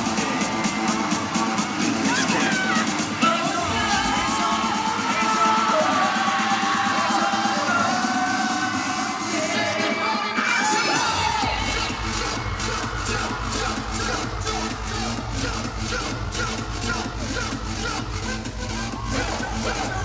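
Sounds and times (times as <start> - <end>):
audience screaming and cheering: 0.0 - 20.0
heavy bass beat: 0.0 - 20.0
music over sound system: 0.0 - 20.0.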